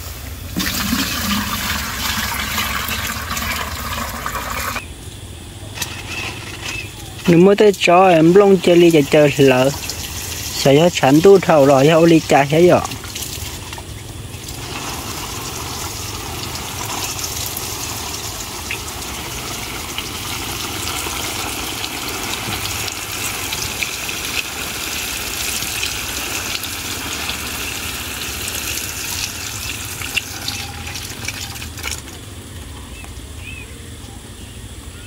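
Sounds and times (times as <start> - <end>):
water sprinkling onto leaves: 7.2 - 32.2.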